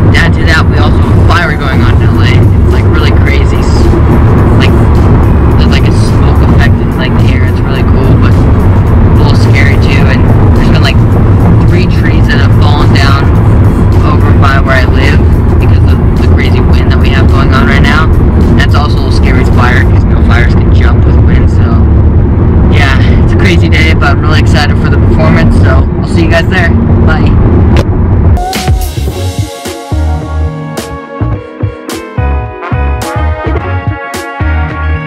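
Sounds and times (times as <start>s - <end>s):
car road rumble: 0.0s - 29.4s
person singing with music: 28.4s - 35.0s.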